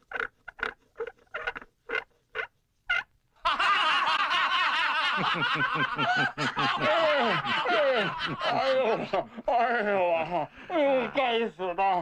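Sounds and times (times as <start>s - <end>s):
crowd laughing: 3.4s - 11.1s.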